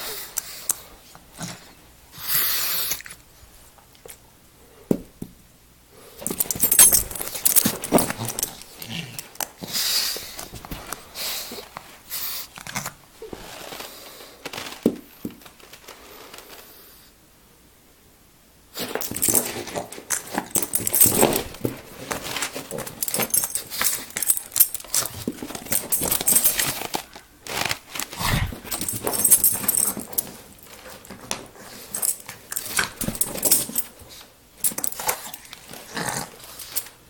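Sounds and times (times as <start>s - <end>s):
puppy grunting: 28.1s - 29.1s.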